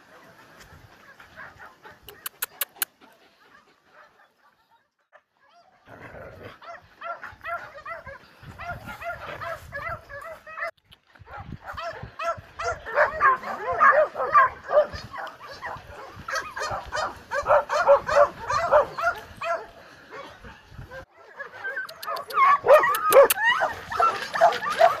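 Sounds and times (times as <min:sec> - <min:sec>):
dogs barking and yelping: 0:00.1 - 0:25.0
sharp clicks: 0:02.1 - 0:02.9
dogs whimpering: 0:21.0 - 0:25.0.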